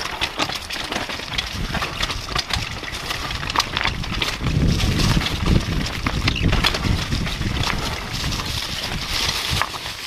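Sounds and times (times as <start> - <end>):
bike knocking and rattling: 0.0 - 10.0
tyres rumbling over stones: 0.0 - 10.0.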